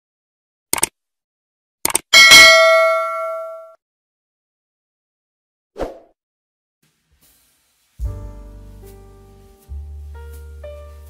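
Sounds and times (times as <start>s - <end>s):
double mouse click: 1.8s - 2.0s
bell ding: 2.2s - 3.8s.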